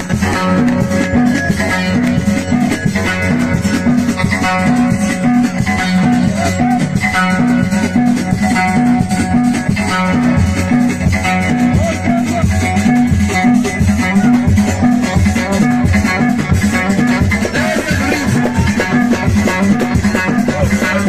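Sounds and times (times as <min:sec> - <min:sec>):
lute plucked in fast riff: 0:00.0 - 0:21.0
steady percussion: 0:00.0 - 0:21.0.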